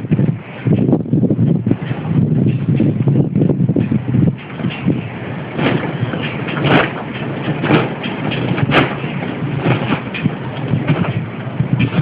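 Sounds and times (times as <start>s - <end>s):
low rumble of wind and mill: 0.0s - 12.0s
windmill sails swishing: 0.0s - 12.0s.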